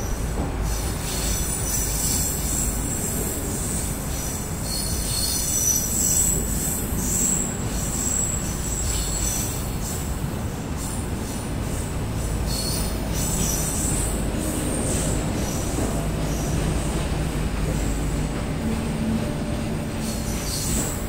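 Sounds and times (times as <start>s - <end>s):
train wheels rumbling on rails: 0.0s - 21.0s.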